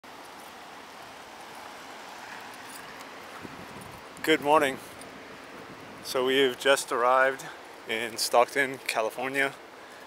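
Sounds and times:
steady outdoor hiss: 0.0s - 10.0s.

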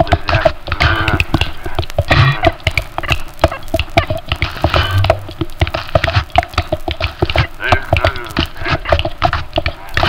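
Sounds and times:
clacking knocking percussion: 0.0s - 10.0s.

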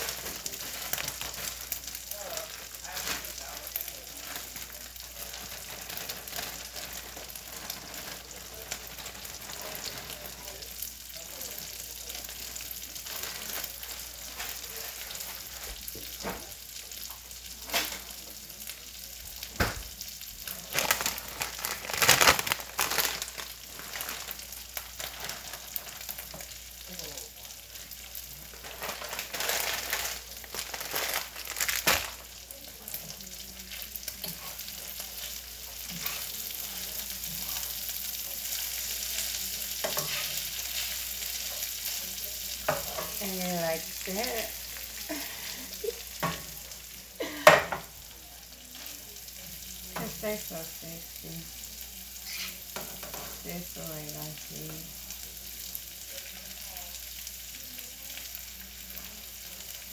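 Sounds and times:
package rustling: 0.0s - 10.3s, 20.6s - 26.4s, 28.5s - 32.4s
food sizzling in a frying pan: 0.0s - 59.9s.

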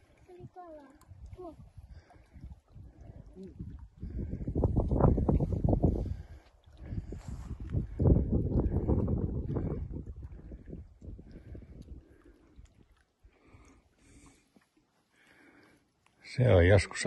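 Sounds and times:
wind buffeting phone microphone: 0.4s - 12.9s.

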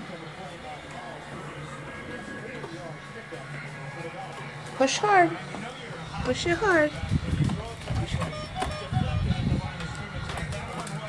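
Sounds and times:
electronic toy music: 8.2s - 9.4s.

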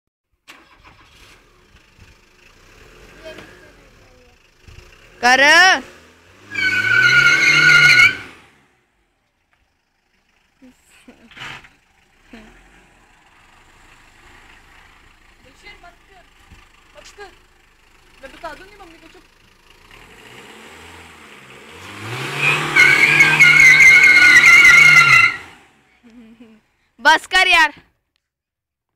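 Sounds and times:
car engine revving: 0.5s - 26.5s
high wavering squeal: 22.3s - 25.4s.

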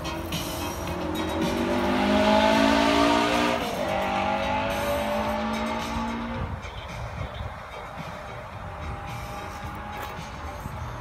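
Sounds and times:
car engine accelerating past: 1.0s - 6.4s.

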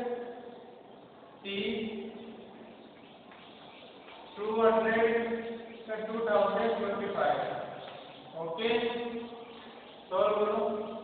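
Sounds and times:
man speaking: 1.4s - 2.3s, 4.3s - 9.5s, 10.1s - 11.0s.

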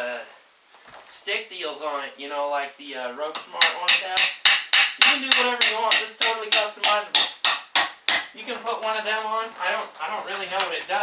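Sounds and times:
fast beat of sharp knocks: 3.4s - 8.4s.

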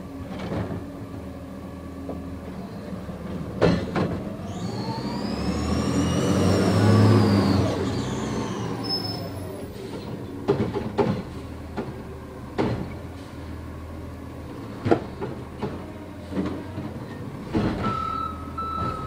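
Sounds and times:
truck engine rumble: 0.0s - 19.0s.

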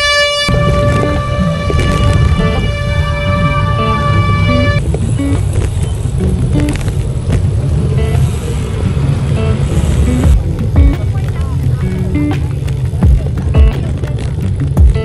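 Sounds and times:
wind and road noise: 0.0s - 15.0s
heavy low thumps: 0.5s - 6.6s, 9.7s - 15.0s.

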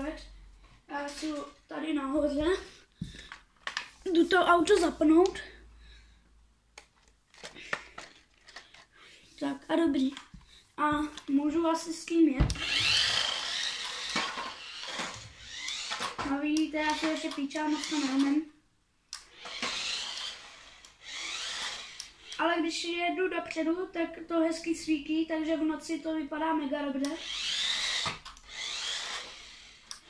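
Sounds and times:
toy car being handled: 6.7s - 9.0s, 12.6s - 18.4s, 19.2s - 22.5s, 27.0s - 30.0s.

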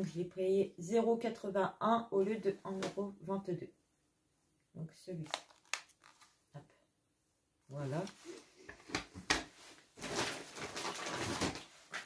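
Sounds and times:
packaging rustling: 5.2s - 6.4s, 8.2s - 12.0s.

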